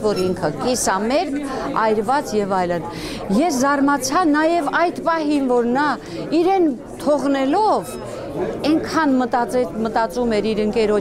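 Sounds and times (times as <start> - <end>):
woman talking: 0.0 - 8.0, 8.6 - 11.0.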